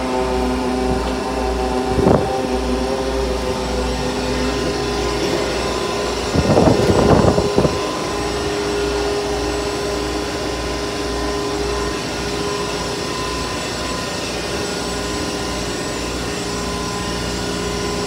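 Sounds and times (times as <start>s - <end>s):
engine-room machinery drone: 0.0s - 18.0s
steady machine tones: 0.0s - 18.0s.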